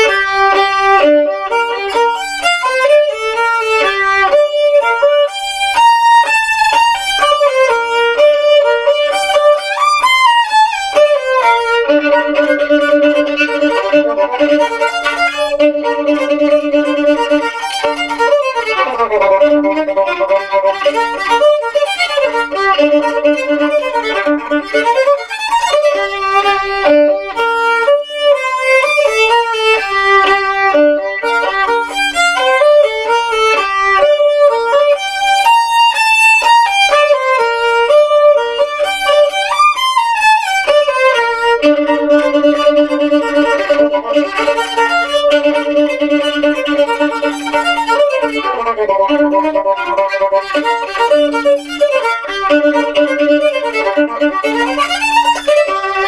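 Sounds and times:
solo violin playing: 0:00.0 - 0:56.0.

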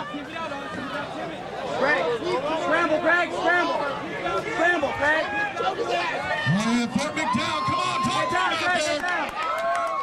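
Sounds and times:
crowd shouting: 0:00.0 - 0:10.0
loud shout: 0:04.9 - 0:10.0.

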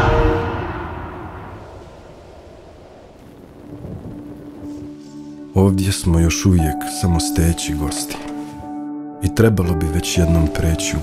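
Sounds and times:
held musical note: 0:00.0 - 0:01.8
low rumble sound effect: 0:00.0 - 0:05.4.

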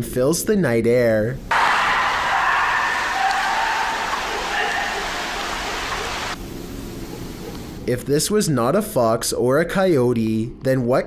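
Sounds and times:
faint high cry: 0:01.5 - 0:05.6.

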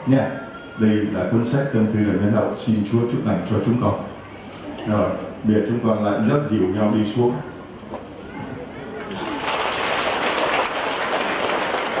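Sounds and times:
crowd applauding: 0:09.0 - 0:12.0.

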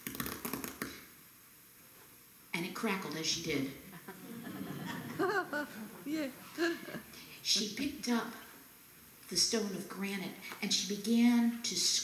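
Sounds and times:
person laughing: 0:03.9 - 0:07.1.

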